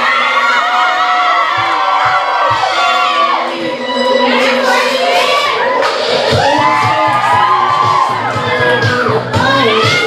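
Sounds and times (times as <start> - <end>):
crowd cheering and shouting: 0.0 - 10.0
dance music through speakers: 1.3 - 10.0.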